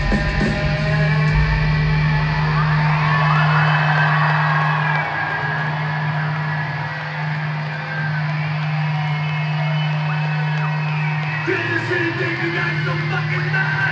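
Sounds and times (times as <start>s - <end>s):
crowd cheering and whooping: 0.0s - 13.9s
rock band holding low note: 0.0s - 13.9s.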